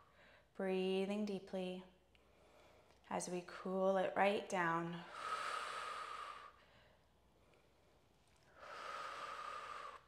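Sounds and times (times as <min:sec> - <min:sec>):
woman breathing deeply: 0:05.0 - 0:10.0.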